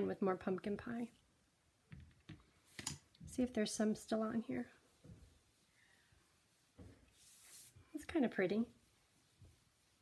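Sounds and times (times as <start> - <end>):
quiet handling sounds: 1.8 - 10.0.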